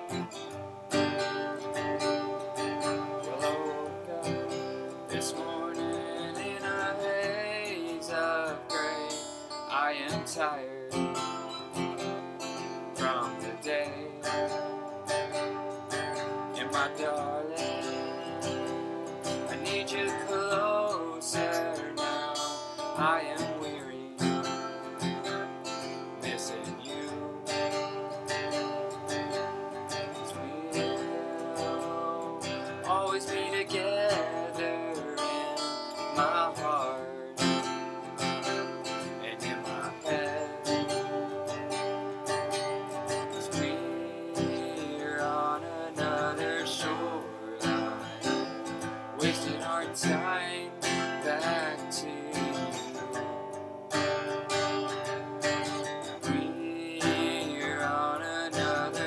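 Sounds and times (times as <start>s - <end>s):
acoustic guitar strumming: 0.0s - 59.0s
man singing: 0.0s - 59.0s.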